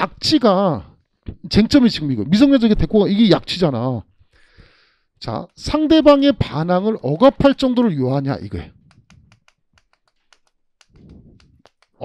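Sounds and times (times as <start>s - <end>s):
chalk writing on a blackboard: 8.9s - 12.0s.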